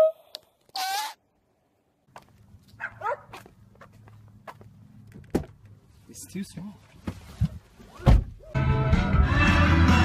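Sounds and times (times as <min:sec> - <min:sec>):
high squeaky cry: 0:00.8 - 0:01.2
footsteps on pavement: 0:02.1 - 0:05.6.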